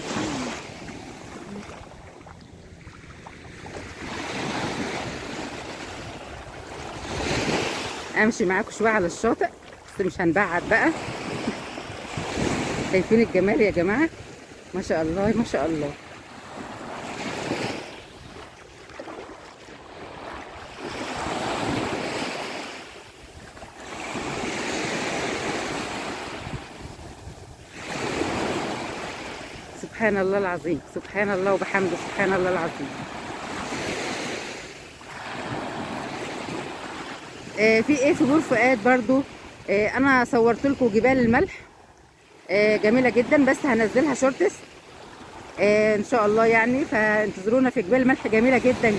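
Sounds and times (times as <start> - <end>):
waves breaking on beach: 0.0 - 48.9
wind buffeting microphone: 26.2 - 28.4.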